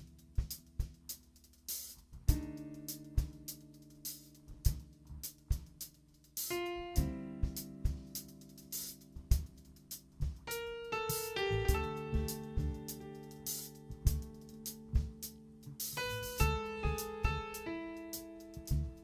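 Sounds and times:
smooth jazz band playing: 10.5 - 15.2.

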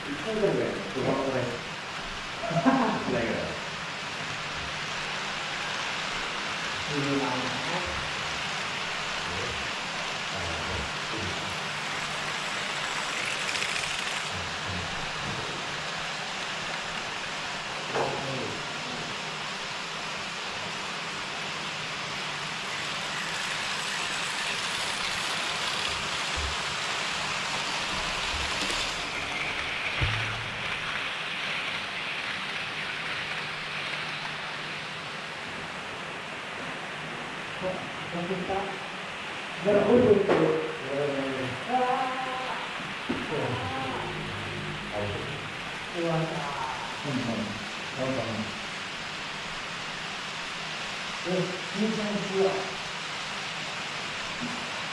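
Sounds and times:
model train wheels whirring: 0.0 - 2.4, 3.2 - 17.7, 19.2 - 36.0.

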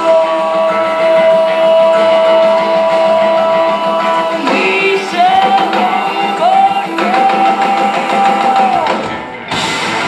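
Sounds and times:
live rock band: 0.0 - 10.0.

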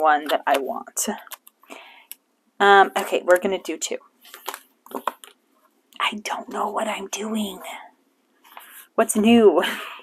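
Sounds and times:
paper rustling and crinkling: 4.2 - 5.4.

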